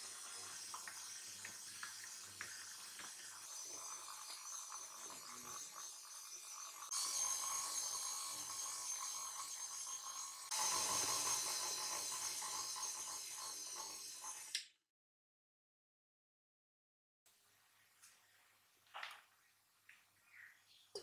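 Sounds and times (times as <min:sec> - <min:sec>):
stand mixer motor whine: 0:00.0 - 0:14.6.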